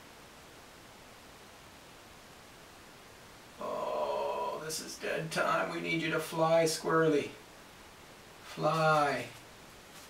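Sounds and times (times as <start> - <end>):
faint room hiss: 0.0 - 10.0
man's drawn-out voice: 3.6 - 7.4, 8.5 - 9.4.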